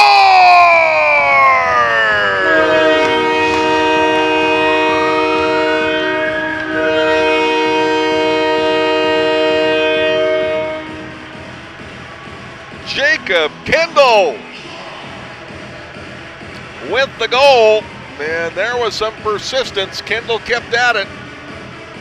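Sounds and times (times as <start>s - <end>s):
arena goal horn: 1.6s - 11.5s.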